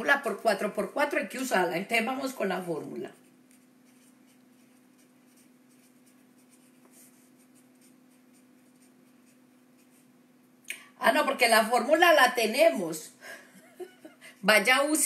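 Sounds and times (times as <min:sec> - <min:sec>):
steady low hum: 0:00.0 - 0:15.0
pen scratching handwriting: 0:03.1 - 0:10.1.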